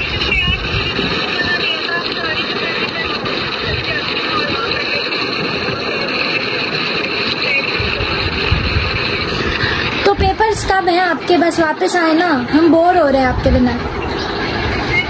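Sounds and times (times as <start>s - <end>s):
steady rushing noise: 0.0s - 15.0s.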